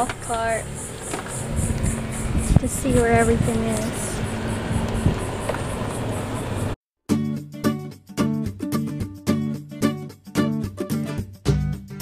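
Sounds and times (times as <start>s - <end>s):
golf cart ride and wind noise: 0.0s - 6.8s.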